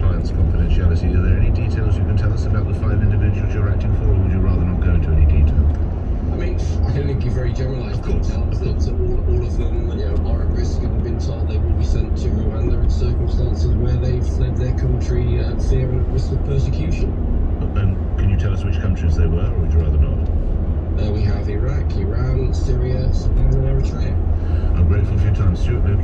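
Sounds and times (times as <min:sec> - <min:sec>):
car road and engine rumble: 0:00.0 - 0:26.0
talk radio voice: 0:21.0 - 0:26.0.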